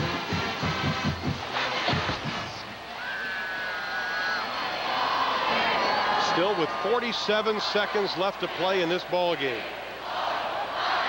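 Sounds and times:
rapid drum beats: 0.0 - 2.6
stadium crowd cheering: 0.7 - 11.0.

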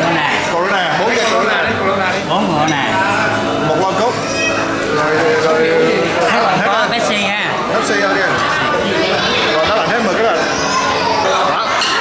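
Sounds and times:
diners chatter: 0.0 - 12.0.

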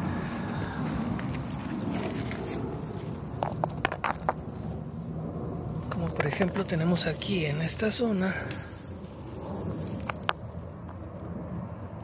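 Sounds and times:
sharp crackles: 5.6 - 11.8
dry leaves crunching and rustling: 5.7 - 11.3.

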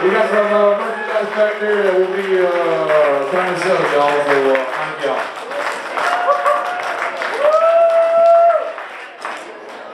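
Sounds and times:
audience applauding and cheering: 0.0 - 9.9
high held whoop: 6.0 - 8.7.

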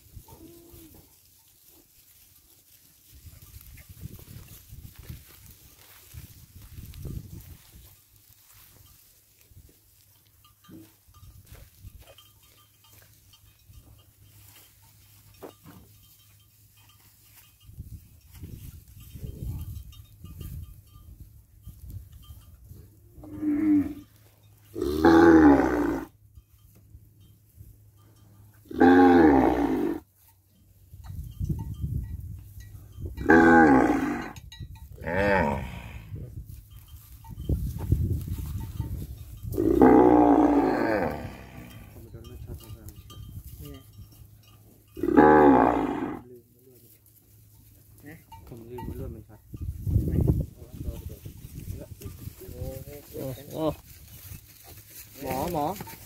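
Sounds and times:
cattle mooing: 23.2 - 24.1, 24.8 - 26.1, 28.6 - 30.0, 33.2 - 34.4, 35.0 - 36.1, 39.6 - 42.0, 45.0 - 46.2.

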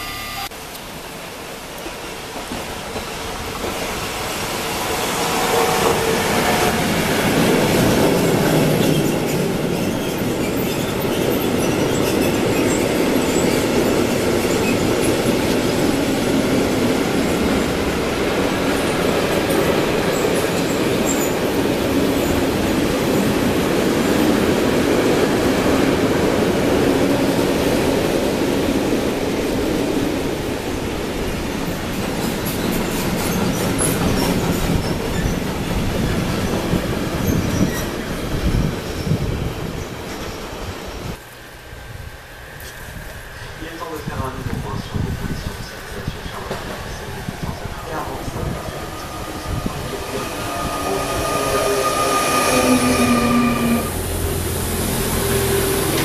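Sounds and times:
train wheels rumbling on rails: 0.5 - 56.0
high wheel squeaks: 37.2 - 39.4, 48.4 - 54.1.

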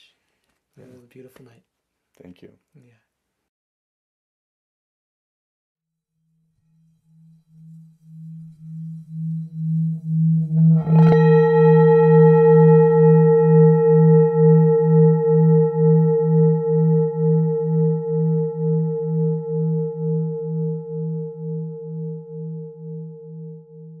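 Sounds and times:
singing bowl ringing: 6.2 - 24.0.

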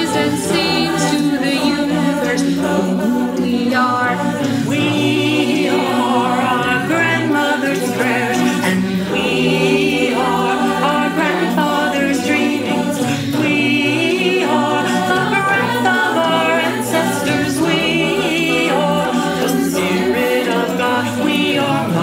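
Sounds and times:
mixed choir singing in harmony: 0.0 - 22.0.

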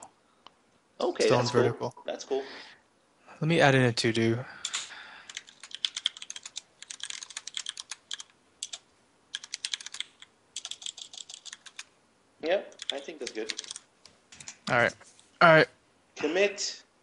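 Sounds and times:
computer keyboard typing: 4.6 - 11.9, 12.7 - 14.8.

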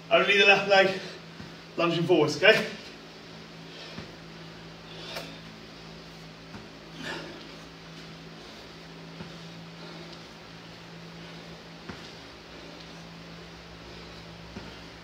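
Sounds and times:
ventilation hum: 0.0 - 15.0
feet landing thuds: 1.3 - 1.8, 3.8 - 4.3, 6.3 - 15.0.

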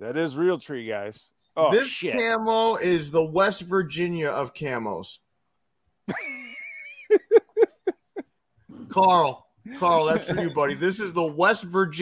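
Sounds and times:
man laughing: 6.1 - 8.3, 9.7 - 11.0.

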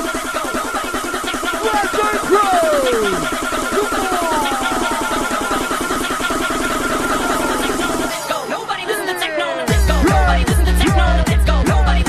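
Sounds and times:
bounce dance music: 0.0 - 12.0.

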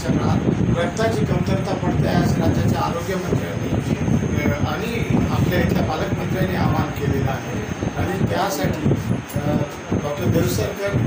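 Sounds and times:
low background noise: 0.0 - 11.0
man speaking: 0.0 - 11.0.

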